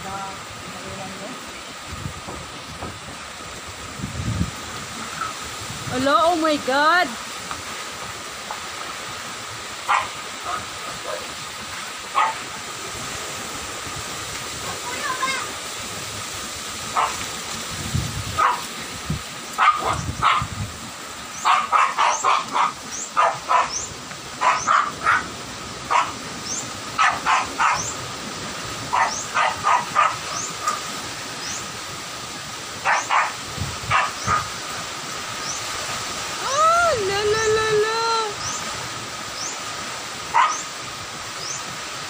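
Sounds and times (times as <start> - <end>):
strong wind and rain: 0.0 - 42.0
dog barking: 9.9 - 11.4, 12.1 - 12.5, 16.9 - 17.2, 18.4 - 18.7, 19.6 - 20.5, 21.4 - 23.8, 24.4 - 25.3, 25.9 - 26.2, 27.0 - 28.0, 28.9 - 30.9, 32.8 - 34.5, 40.3 - 40.7.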